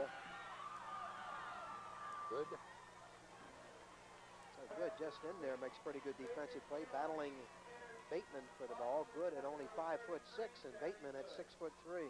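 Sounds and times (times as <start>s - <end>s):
long held shout: 0.0s - 10.3s
crowd yelling: 0.0s - 12.0s.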